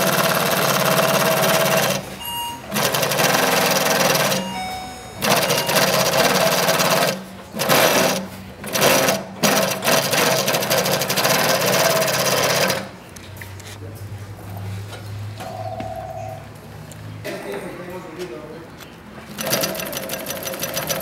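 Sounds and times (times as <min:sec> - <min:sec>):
industrial sewing machine stitching: 0:00.0 - 0:04.5, 0:05.2 - 0:12.9, 0:19.3 - 0:21.0.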